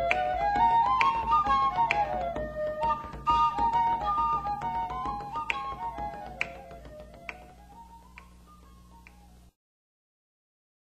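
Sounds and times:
sharp snaps: 0:00.0 - 0:09.3
flute-like folk melody: 0:00.0 - 0:09.6.

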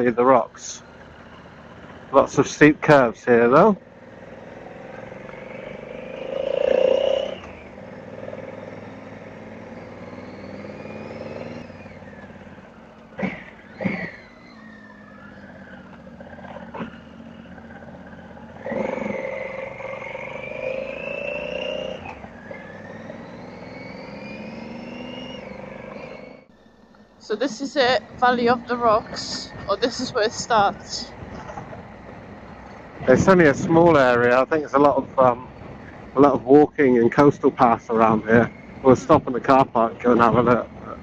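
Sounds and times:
motorcycle engine accelerating: 0:00.0 - 0:41.0.

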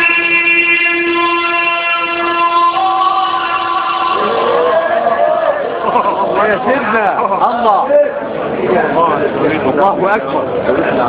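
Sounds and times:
man chanting a long note: 0:00.0 - 0:05.6.

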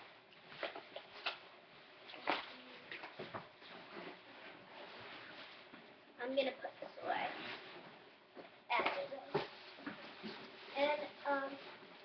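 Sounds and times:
rustling: 0:00.3 - 0:08.0.

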